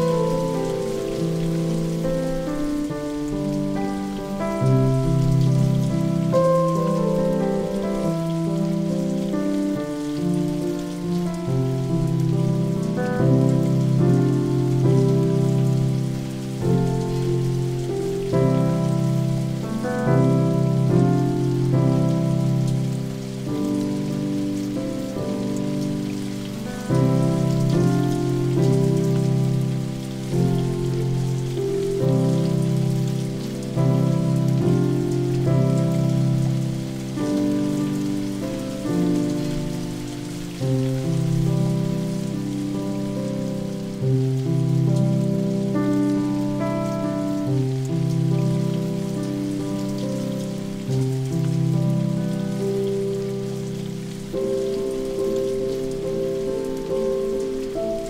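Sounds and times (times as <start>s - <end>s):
piano playing slow chords: 0.0s - 58.0s
rain falling: 0.0s - 58.0s.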